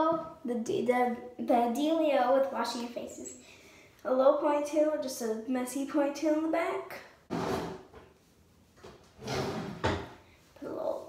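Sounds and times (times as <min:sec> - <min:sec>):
drawer sliding scrape: 0:07.3 - 0:08.0, 0:09.1 - 0:10.2.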